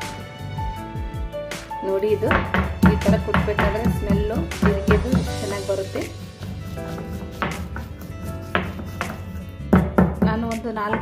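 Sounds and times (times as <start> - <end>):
background music: 0.0 - 11.0
pestle pounding in stone mortar: 2.3 - 11.0.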